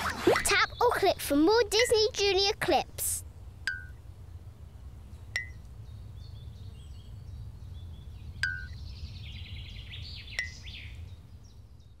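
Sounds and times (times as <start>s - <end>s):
birds chirping and trilling: 0.0s - 12.0s.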